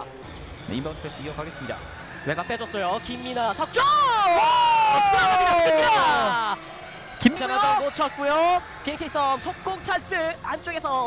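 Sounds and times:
arena background noise: 0:00.0 - 0:11.0.

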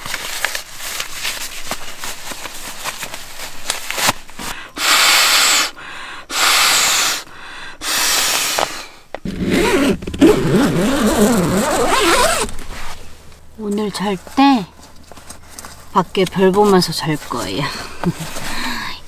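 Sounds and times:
breaths blowing into a valve: 0:04.8 - 0:09.8
low hum: 0:09.2 - 0:13.6.

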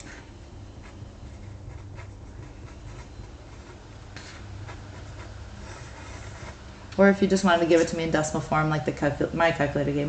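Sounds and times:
low steady hum: 0:00.0 - 0:10.0
pen scratching on paper: 0:00.8 - 0:06.6.

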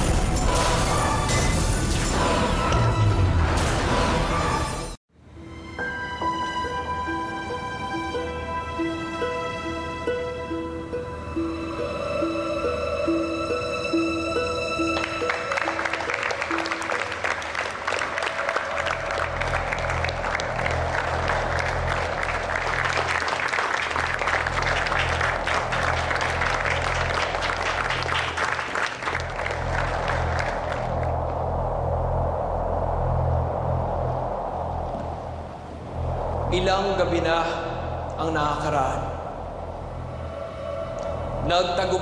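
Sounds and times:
low sustained music: 0:04.4 - 0:42.0
crowd applauding: 0:14.9 - 0:31.1.

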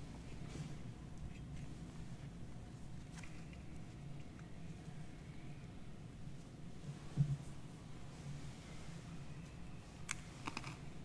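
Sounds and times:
faint low room hum: 0:00.0 - 0:11.0.

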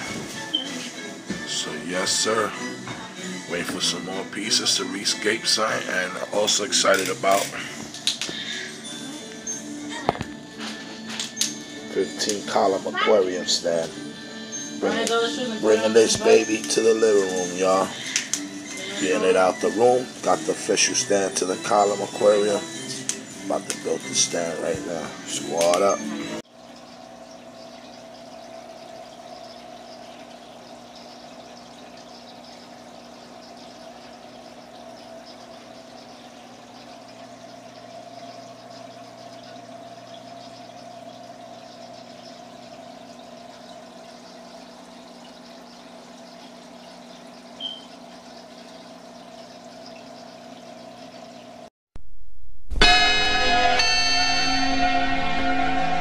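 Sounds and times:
water trickling: 0:00.0 - 0:51.7
aquarium pump hum: 0:00.0 - 0:56.0
loud outro music: 0:52.7 - 0:56.0.

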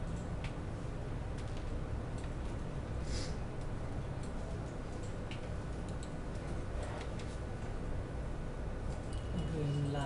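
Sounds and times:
low background hum: 0:00.0 - 0:10.0
faint computer clicks: 0:03.6 - 0:07.4.

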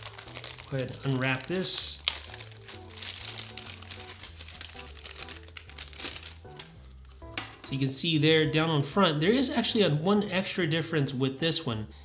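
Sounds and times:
plastic wrapping crinkling: 0:00.0 - 0:07.6
soft background music: 0:00.0 - 0:12.0.

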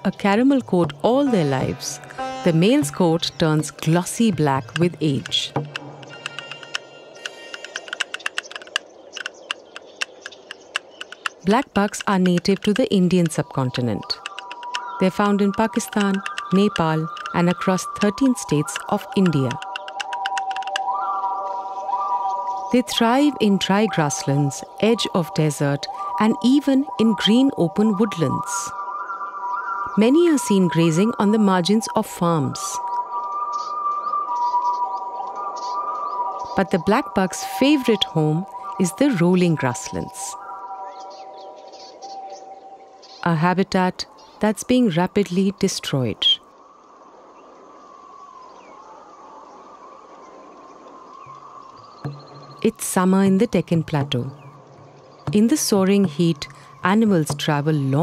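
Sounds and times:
soft held tones of music: 0:00.0 - 0:07.5
high bird chirps: 0:00.0 - 0:43.3, 0:51.1 - 0:58.0
hooves clicking on stony ground: 0:02.9 - 0:20.8, 0:52.1 - 0:58.0.

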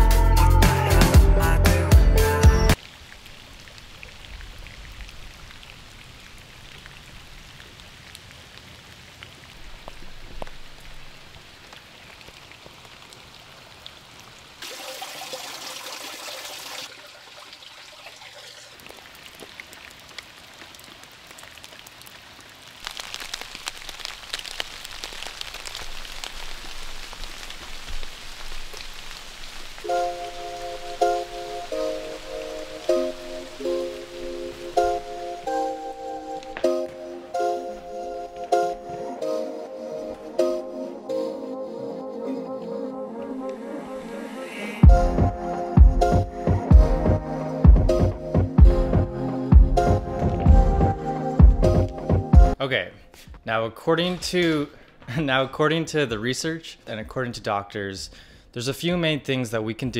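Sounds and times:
music track: 0:00.0 - 0:02.8, 0:29.8 - 0:52.6
rain pattering: 0:02.7 - 0:41.3, 0:44.8 - 0:52.6.

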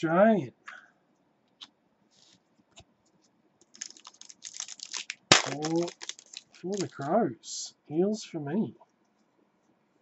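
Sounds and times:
cards clicking: 0:03.6 - 0:07.0
card pack crinkling open: 0:03.6 - 0:07.1.

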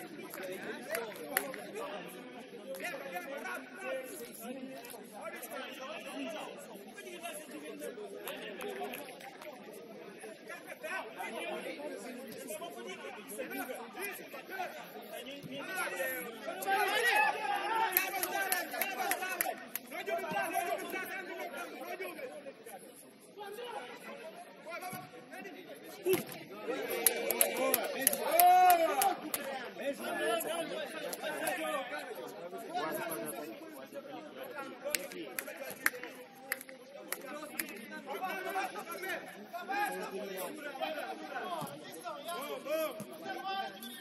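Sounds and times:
crowd chatter and calling out: 0:00.0 - 0:44.0
people talking at once: 0:00.0 - 0:44.0.

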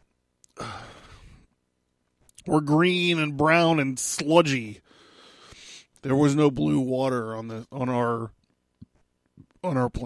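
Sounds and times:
man breathing into microphone: 0:00.6 - 0:01.5, 0:04.8 - 0:05.9.

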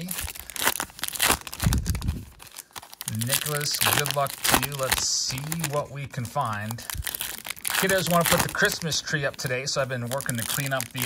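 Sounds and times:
foil wrapper tearing and crinkling: 0:00.0 - 0:11.0.

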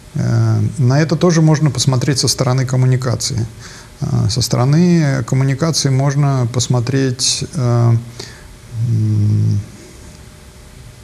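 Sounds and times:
man's hesitation sound: 0:07.3 - 0:10.1.

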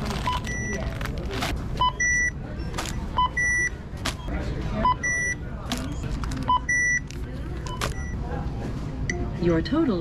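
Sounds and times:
plastic bag rustling: 0:00.0 - 0:01.6
self-checkout kiosk beeping: 0:00.0 - 0:10.0.

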